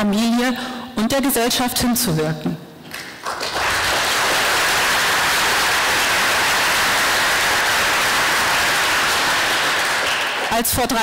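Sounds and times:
audience applauding: 2.9 - 11.0.

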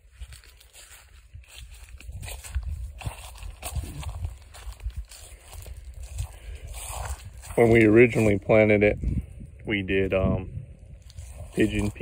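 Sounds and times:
footsteps on dry leaves: 0.0 - 8.7, 10.9 - 12.0.

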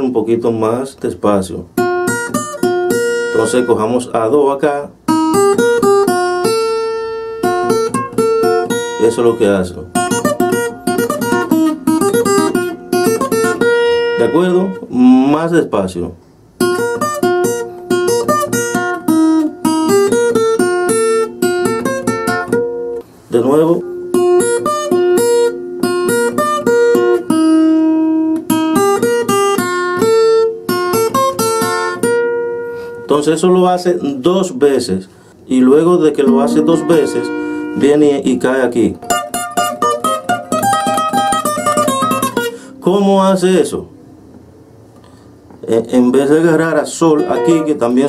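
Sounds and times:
acoustic guitar playing: 0.6 - 15.8, 16.4 - 48.0.

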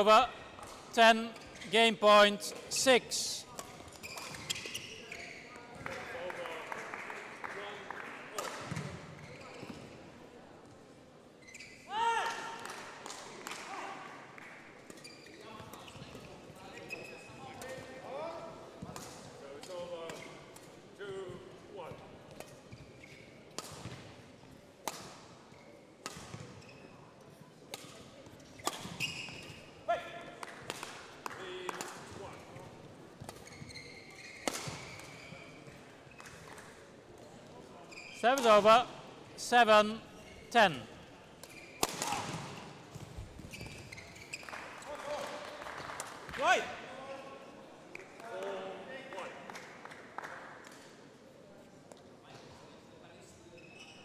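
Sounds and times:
shoes squeaking on floor: 3.7 - 5.8, 8.7 - 9.9, 11.4 - 11.9, 14.9 - 17.8, 22.4 - 23.5, 25.5 - 27.0, 28.5 - 29.7, 32.2 - 36.6, 37.8 - 38.8, 41.4 - 44.6, 53.5 - 54.0
rackets hitting shuttlecock: 34.4 - 35.2, 41.4 - 43.8.

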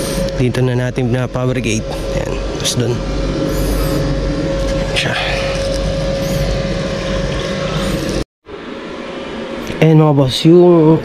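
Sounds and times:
machine humming and rumbling: 0.0 - 11.0.

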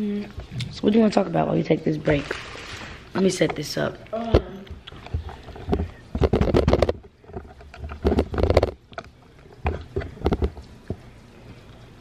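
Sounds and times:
phone handling rubbing and knocks: 5.1 - 8.8.

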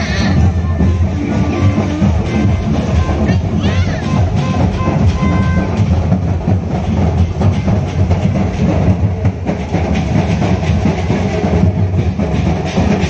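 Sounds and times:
clattering percussion: 0.0 - 13.0
large crowd rumble: 0.0 - 13.0.

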